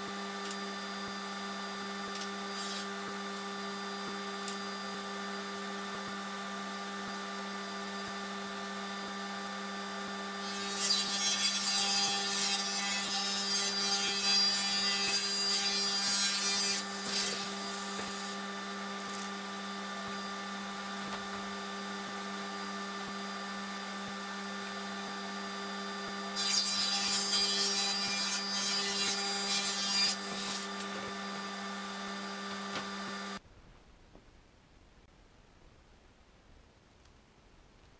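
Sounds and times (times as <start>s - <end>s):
table saw cutting wood: 0.0s - 33.4s.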